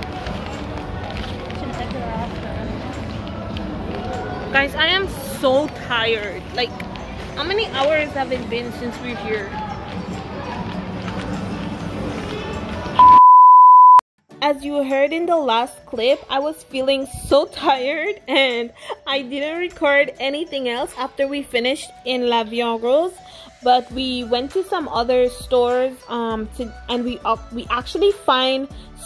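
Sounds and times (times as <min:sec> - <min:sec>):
outdoor background noise: 0:00.0 - 0:13.0
electronic beep: 0:13.0 - 0:14.0.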